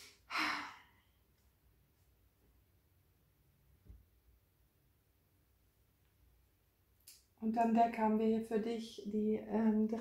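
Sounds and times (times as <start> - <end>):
woman sighing: 0.3 - 1.0.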